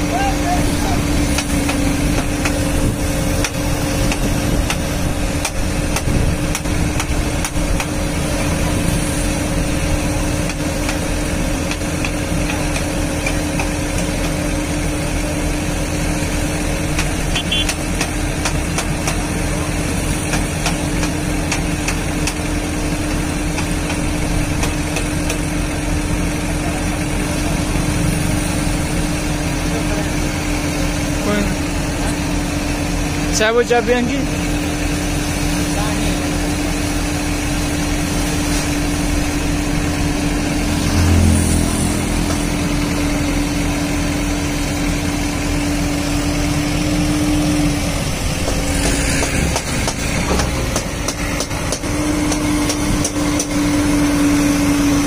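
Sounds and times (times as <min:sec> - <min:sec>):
excavator diesel engine idling: 0:00.0 - 0:55.0.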